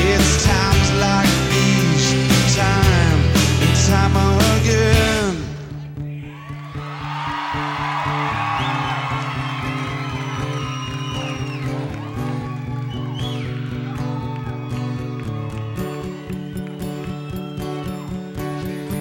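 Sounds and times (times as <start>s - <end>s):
rock band playing live: 0.0s - 19.0s
audience cheering and whooping: 6.2s - 18.6s.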